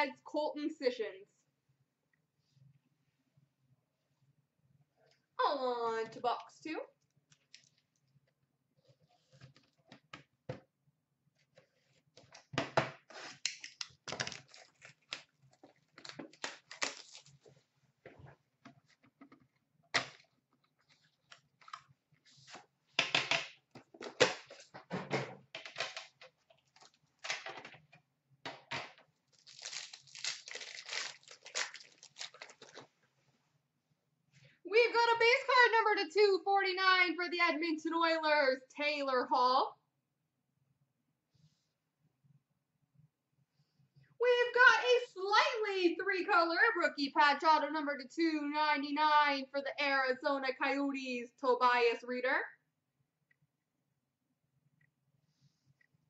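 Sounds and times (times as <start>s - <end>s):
tearing and crinkling of wrapping: 13.3s - 17.4s, 29.3s - 32.9s.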